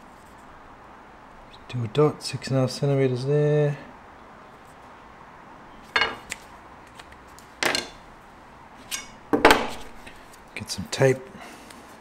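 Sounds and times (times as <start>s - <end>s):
tools clattering on wooden bench: 5.9s - 6.4s, 7.6s - 8.0s, 8.9s - 9.9s.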